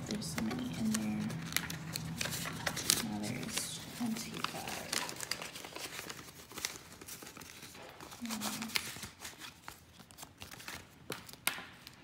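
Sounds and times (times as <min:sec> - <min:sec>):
paper banknotes rustling: 0:00.0 - 0:12.0.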